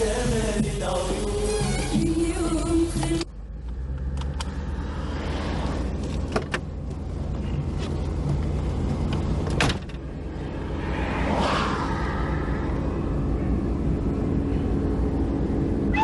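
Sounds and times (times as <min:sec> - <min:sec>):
song with singing voice: 0:00.0 - 0:03.3
car engine idling: 0:05.8 - 0:10.9, 0:11.8 - 0:16.0.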